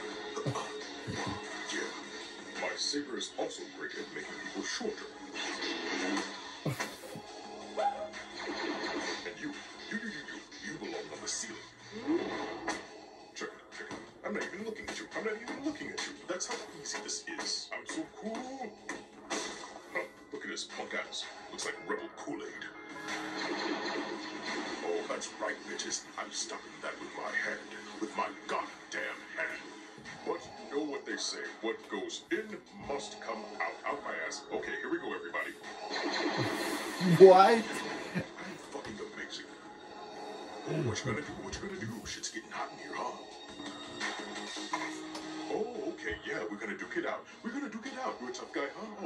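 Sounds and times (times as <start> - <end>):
film soundtrack music: 0.0 - 34.7, 35.4 - 48.5.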